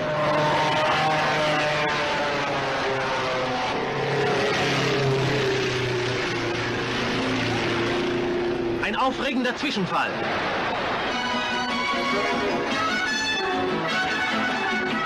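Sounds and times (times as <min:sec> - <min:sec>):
racing car engines passing: 0:00.0 - 0:15.0.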